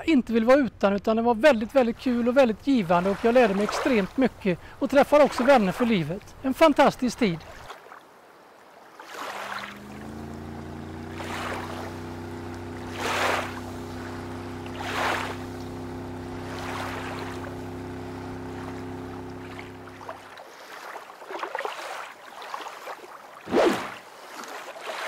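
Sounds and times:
lake water washing in surges: 2.2 - 25.0
steady low hum: 9.4 - 20.4.

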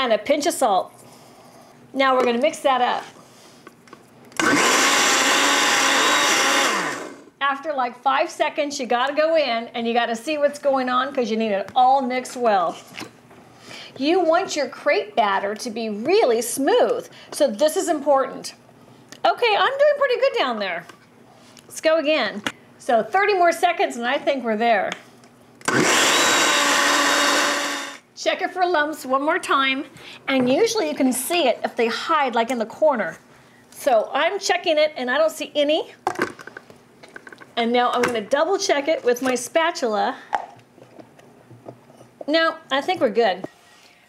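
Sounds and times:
blender motor running: 4.4 - 7.3, 25.6 - 28.0
blender motor winding down: 4.4 - 7.3, 25.6 - 28.0.

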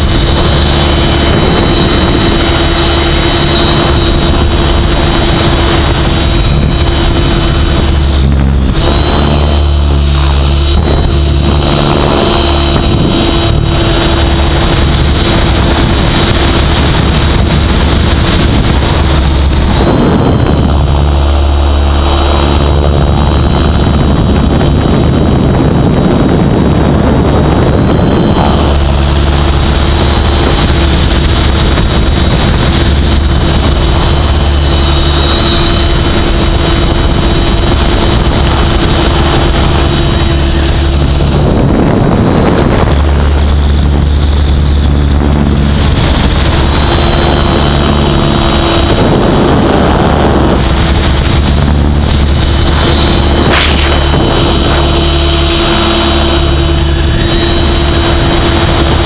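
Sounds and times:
electric motor whine: 0.0 - 59.0
helicopter rotors buzzing: 0.0 - 59.0
rush of air: 0.0 - 59.0.

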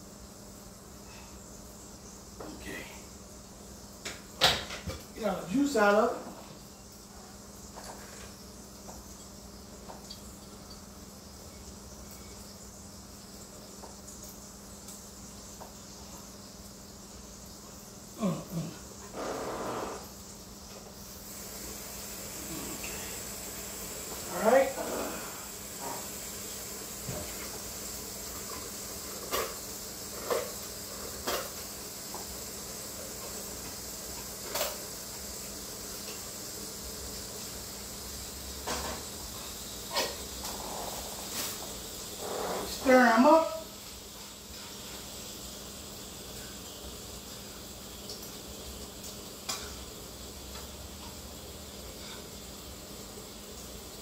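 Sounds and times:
food sizzling in skillets: 0.0 - 54.0.

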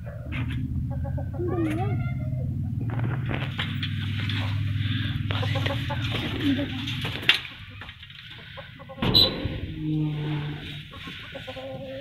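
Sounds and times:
caged birds calling: 0.0 - 12.0.

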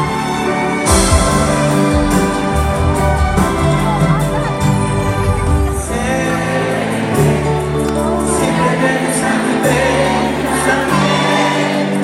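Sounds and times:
live band music with singing: 0.0 - 12.0.

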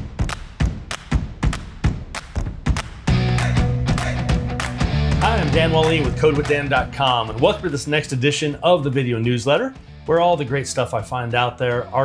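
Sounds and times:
low drum thumps: 0.0 - 7.0.

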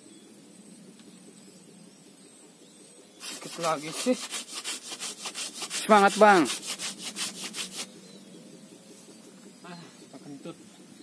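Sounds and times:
hand saw cutting branch: 3.2 - 7.9.

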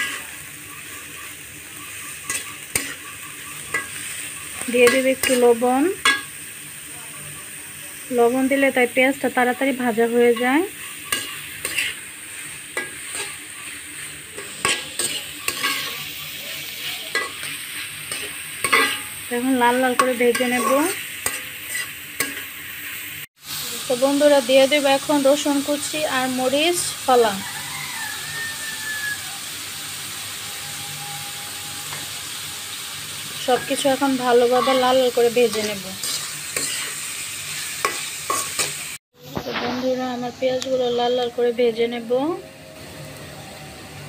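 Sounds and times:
metal spatula scraping pan: 0.0 - 6.5, 10.2 - 22.6, 30.0 - 40.0
onions sizzling in oil: 0.0 - 44.0.

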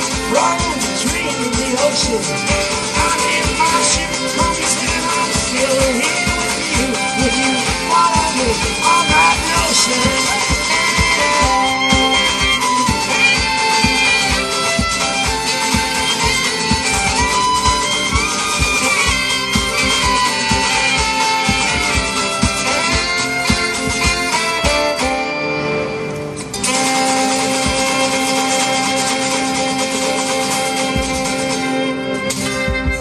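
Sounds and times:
steady drum beat: 0.0 - 25.2, 26.6 - 31.7, 32.3 - 33.0
fiddle melody: 0.0 - 33.0
guitar: 0.0 - 33.0.

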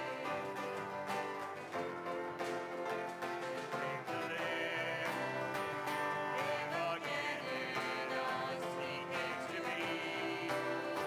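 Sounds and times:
voices singing together: 0.0 - 1.3, 4.0 - 11.0
strummed acoustic guitar: 0.0 - 11.0.

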